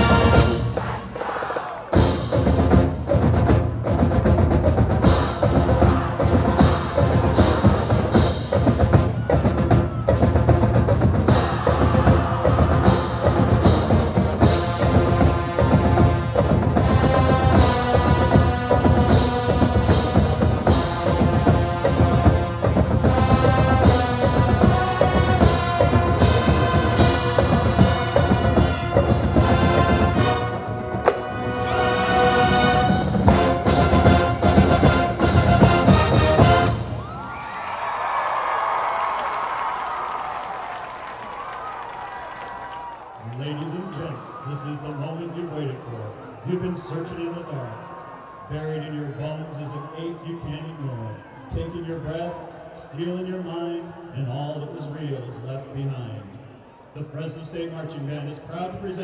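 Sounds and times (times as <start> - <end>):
held brass chords: 0.0 - 37.0
marching drums and percussion: 0.0 - 42.6
marching band playing: 0.0 - 42.8.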